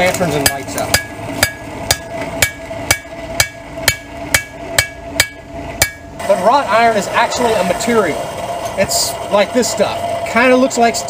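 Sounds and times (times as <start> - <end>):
hammer striking iron on anvil: 0.1 - 6.2.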